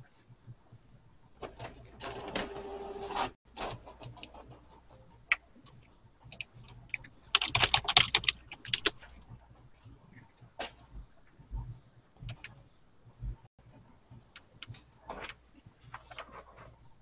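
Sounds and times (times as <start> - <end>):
keyboard typing: 4.0 - 9.2.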